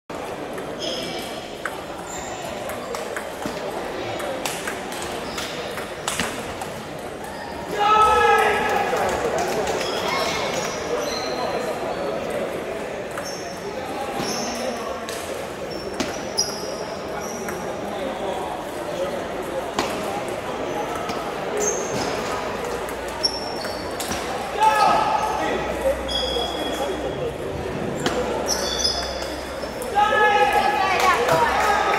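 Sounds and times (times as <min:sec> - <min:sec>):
crowd murmur in echoing hall: 0:00.1 - 0:31.9.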